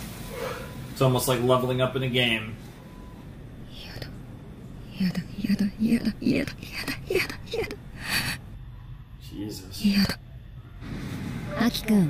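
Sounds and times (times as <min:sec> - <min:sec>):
person whispering: 0:03.7 - 0:04.2.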